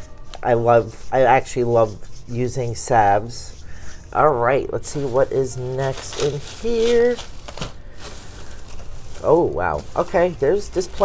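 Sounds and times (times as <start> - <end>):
shredded paper rustling and crinkling: 4.6 - 11.0.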